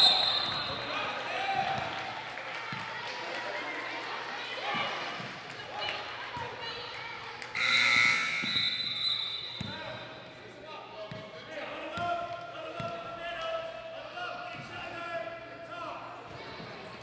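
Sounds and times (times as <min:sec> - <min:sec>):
shrill whistle blast: 0:00.0 - 0:00.8, 0:07.6 - 0:09.6
crowd chatter: 0:00.0 - 0:17.0.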